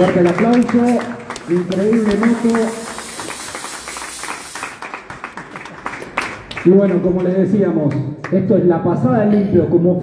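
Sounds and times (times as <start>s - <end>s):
hand clapping: 0.0s - 8.4s
smoke machine hissing: 1.4s - 4.8s.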